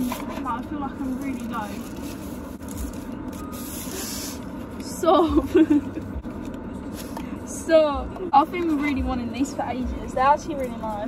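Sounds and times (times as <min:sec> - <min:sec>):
low hum inside car: 0:00.0 - 0:11.0
paper wrapper tearing and rustling: 0:01.0 - 0:04.9.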